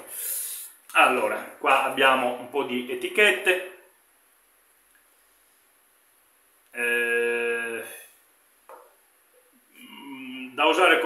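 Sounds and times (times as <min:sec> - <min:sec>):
man's wordless held voice: 0:06.7 - 0:08.2, 0:09.7 - 0:11.0.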